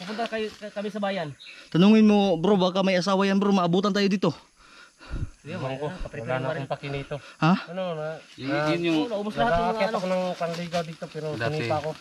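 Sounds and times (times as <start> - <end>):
man talking: 0.0 - 4.4, 5.4 - 12.0.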